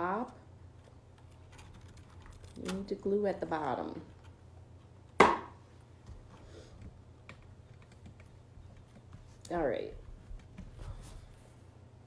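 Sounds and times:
dry twigs clicking and crackling: 0.8 - 2.9.

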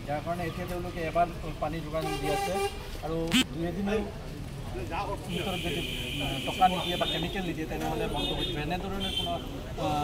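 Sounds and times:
man speaking: 3.2 - 3.7.

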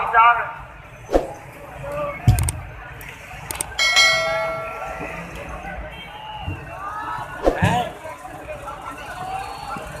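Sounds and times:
bright bell chime: 3.8 - 5.0.

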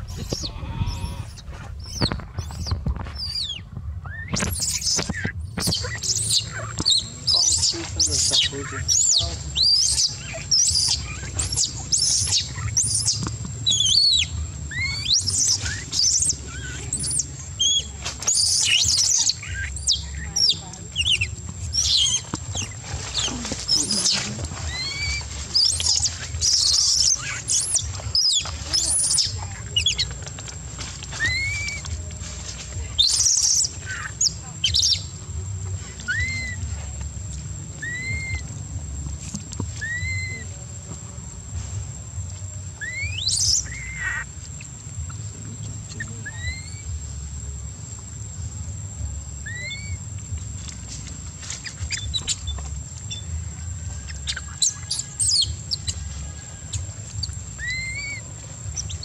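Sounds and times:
baby monkey crying: 0.0 - 30.2, 31.1 - 31.9, 33.0 - 35.1, 35.9 - 36.7, 37.8 - 38.5, 39.7 - 40.5, 42.8 - 45.2, 45.9 - 46.9, 49.4 - 50.0, 51.6 - 53.4, 54.0 - 59.0.

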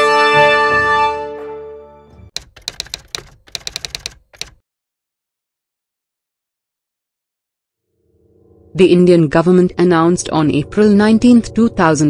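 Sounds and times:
typing key clicks: 2.4 - 4.6.

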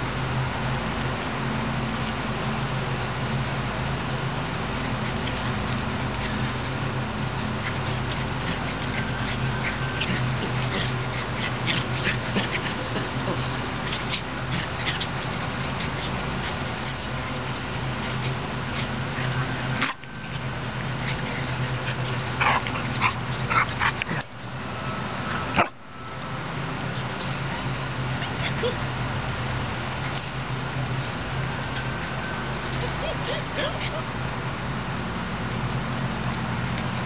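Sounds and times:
steady low hum: 0.0 - 37.0
puppies yipping and whimpering: 4.7 - 25.7, 26.8 - 37.0.

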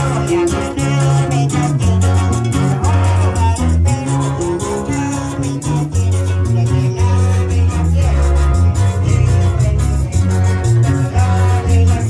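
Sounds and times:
bass line: 0.0 - 12.0
strummed guitars: 0.0 - 12.0.

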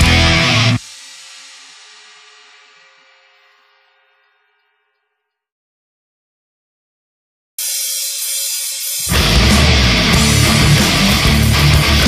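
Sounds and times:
rock song chord ringing out: 0.0 - 4.3, 7.6 - 12.0.

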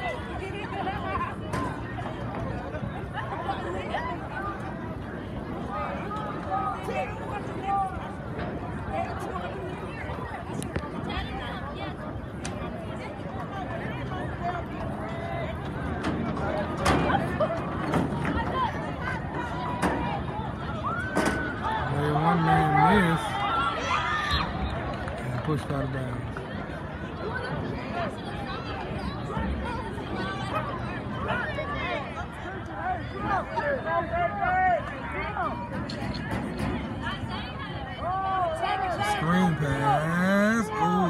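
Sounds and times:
spectators calling out: 39.0 - 41.0.

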